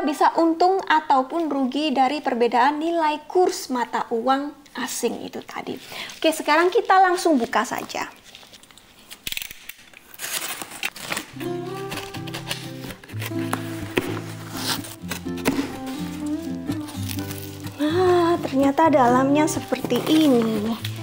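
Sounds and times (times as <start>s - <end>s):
box cutter slitting packing tape: 9.1s - 17.8s
cardboard flaps rustling: 10.3s - 21.0s
background music: 11.3s - 21.0s.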